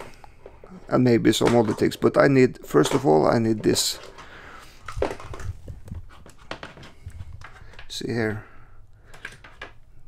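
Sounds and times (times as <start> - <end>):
plastic case rustling: 0.0 - 8.2, 9.1 - 9.8.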